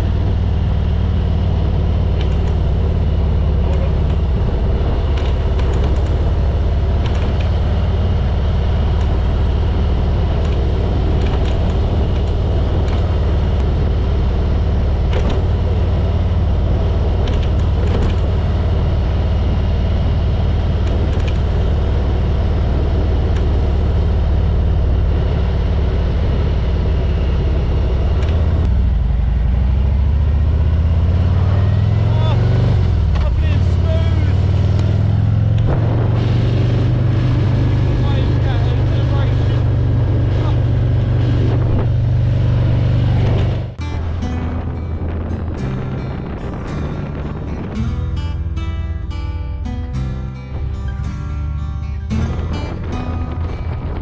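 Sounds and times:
motorcycle engine running: 0.0s - 54.0s
wind noise on microphone: 34.4s - 38.2s, 39.6s - 54.0s.

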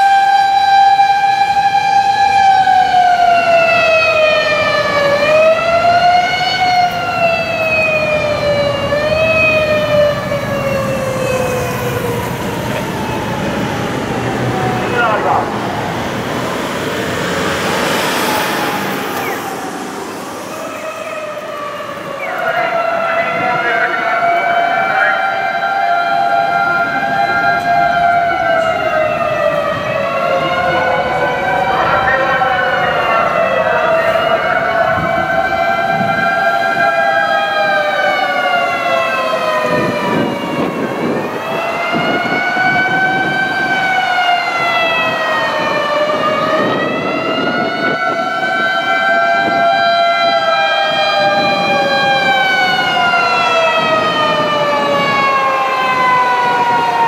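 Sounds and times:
fire engine sirens wailing: 0.0s - 57.0s
low rumble of city traffic: 0.0s - 57.0s.

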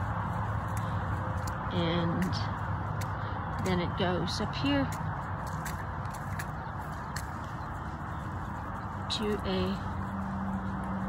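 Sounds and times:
footsteps on concrete: 0.0s - 11.0s
steady background noise: 0.0s - 11.0s.

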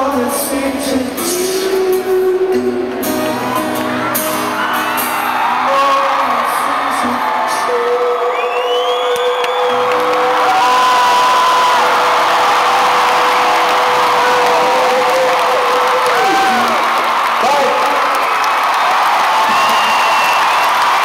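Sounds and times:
crowd cheering and whooping: 3.1s - 21.0s.

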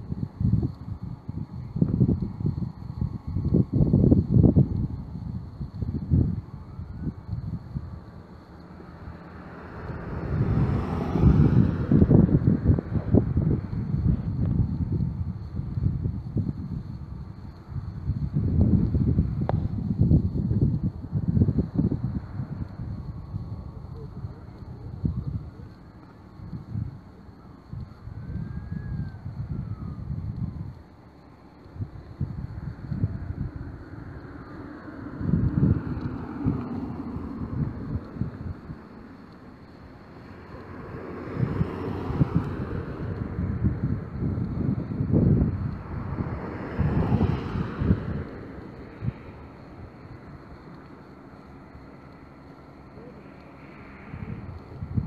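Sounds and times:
street traffic: 0.0s - 55.0s
wind buffeting microphone: 0.0s - 55.0s.

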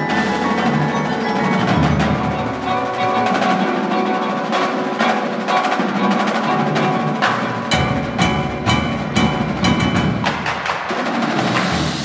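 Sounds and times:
deeper drums: 0.0s - 12.0s
marimbas: 0.0s - 12.0s
snare drums: 0.0s - 12.0s.

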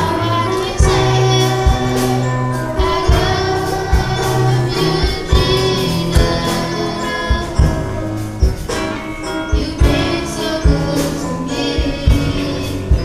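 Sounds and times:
low drum hits: 0.0s - 8.9s
choir singing over instrumental backing: 0.0s - 13.0s.

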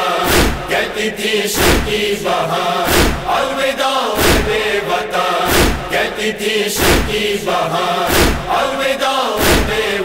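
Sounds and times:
voices chanting a lament: 0.0s - 10.0s
chest-beating strikes: 5.5s - 6.0s.

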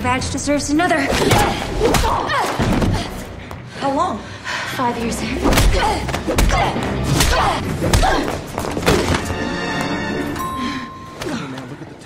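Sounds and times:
women grunting and gasping: 1.1s - 4.2s.

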